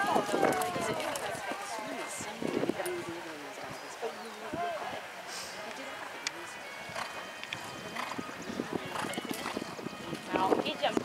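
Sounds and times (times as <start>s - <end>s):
horse hoofbeats on sand: 6.9s - 8.2s.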